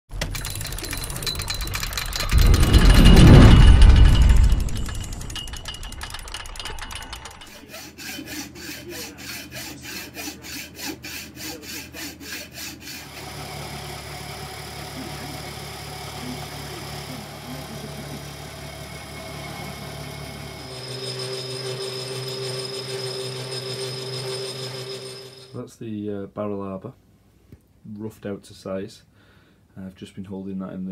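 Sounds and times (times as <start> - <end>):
metal lathe running: 0.1 - 10.9, 11.5 - 25.6
hacksaw cutting steel bar: 6.5 - 15.1, 18.0 - 25.5.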